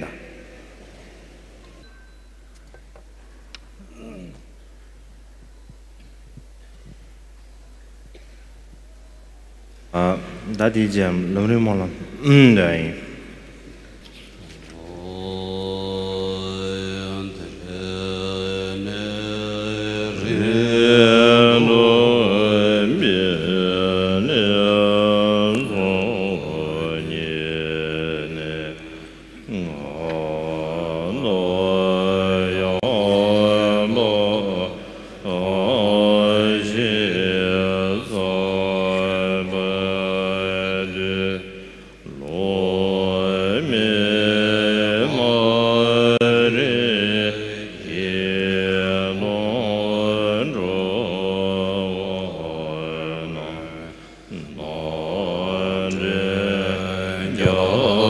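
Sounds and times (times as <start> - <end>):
monks chanting: 14.4 - 58.0.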